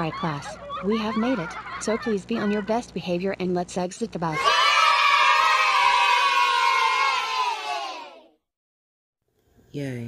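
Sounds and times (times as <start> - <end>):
children cheering: 4.3 - 8.3.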